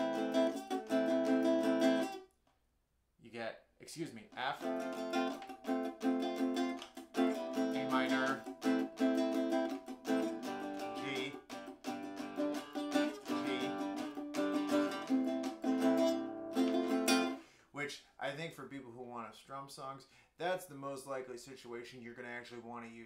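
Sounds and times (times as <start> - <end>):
nylon-string guitar strumming: 0.0 - 2.2, 4.4 - 17.4.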